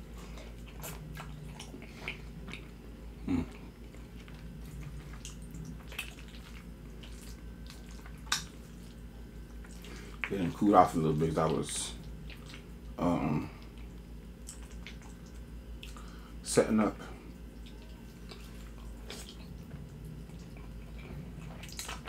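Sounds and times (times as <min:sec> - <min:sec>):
steady low hum: 0:00.0 - 0:22.0
wet chewing mouth clicks: 0:00.3 - 0:02.8, 0:03.4 - 0:10.5, 0:12.0 - 0:16.2, 0:17.5 - 0:22.0.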